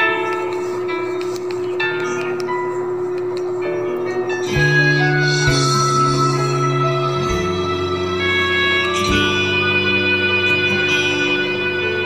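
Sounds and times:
held note: 4.4 - 12.0.

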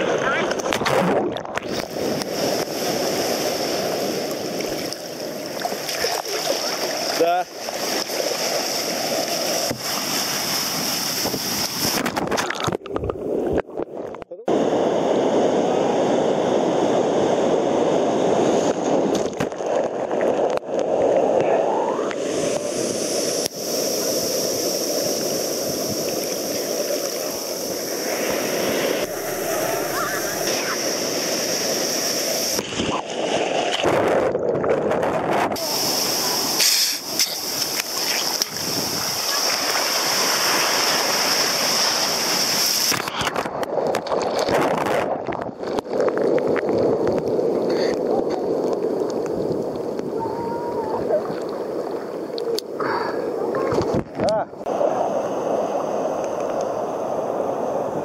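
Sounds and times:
surf breaking and water splashing: 0.0 - 58.0.

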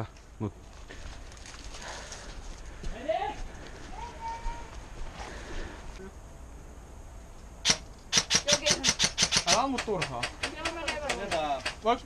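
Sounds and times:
footsteps on grass: 0.1 - 5.5.

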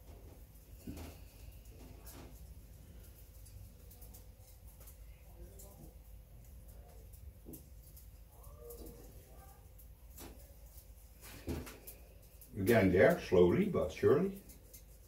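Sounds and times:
faint clicks and knocks: 0.0 - 12.8.

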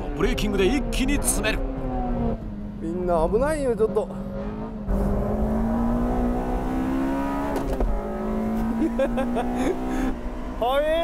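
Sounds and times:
race car engine accelerating: 3.8 - 11.0.

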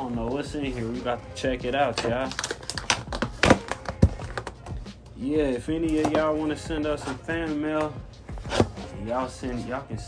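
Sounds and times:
tape tearing: 2.2 - 4.5.

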